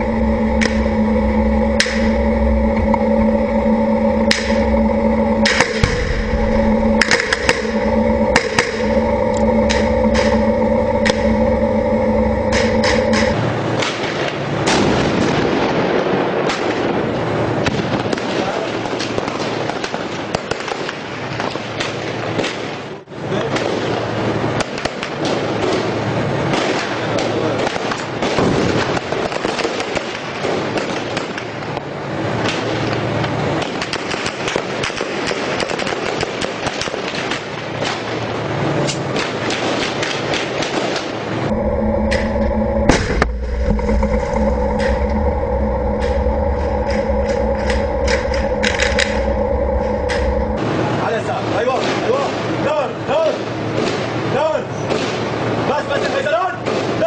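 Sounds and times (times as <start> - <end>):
heavy tank engine running: 0.0 - 19.4, 30.4 - 54.4.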